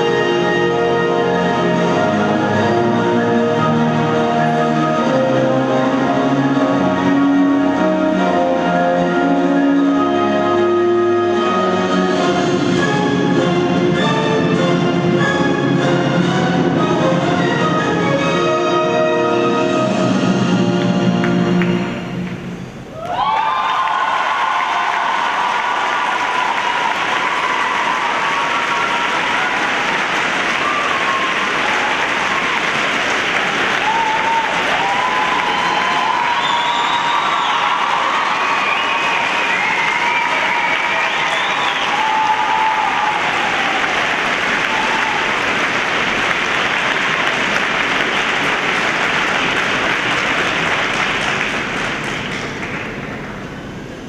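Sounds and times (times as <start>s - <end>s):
audience applauding: 20.8s - 22.4s, 23.0s - 53.5s
scattered cheers: 22.9s - 45.7s.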